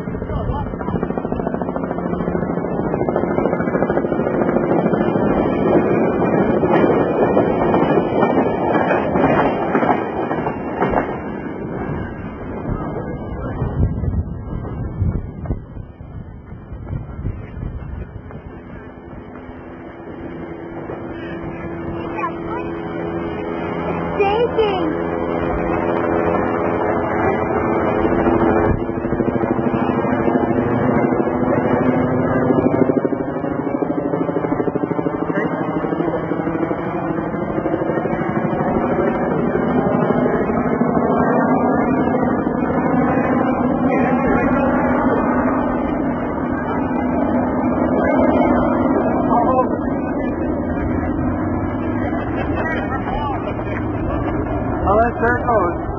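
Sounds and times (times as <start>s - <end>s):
loud mechanical drone: 0.0s - 55.9s.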